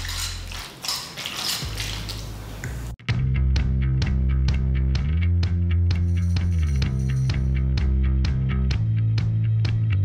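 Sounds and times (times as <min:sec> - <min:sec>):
background music with bass and beat: 0:02.8 - 0:10.0.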